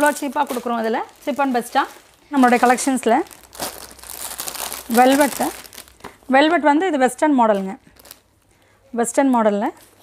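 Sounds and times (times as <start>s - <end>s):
plastic packets crinkling: 0.0s - 6.4s, 7.5s - 8.4s.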